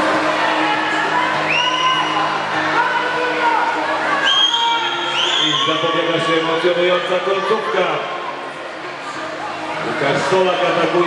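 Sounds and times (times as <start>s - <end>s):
crowd din: 0.0s - 11.0s.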